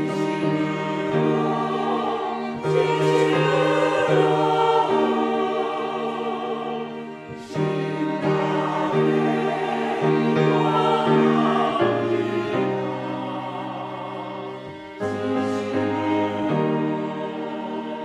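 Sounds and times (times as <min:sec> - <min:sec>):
church choir singing a hymn: 0:00.0 - 0:18.0
violins: 0:00.0 - 0:18.0.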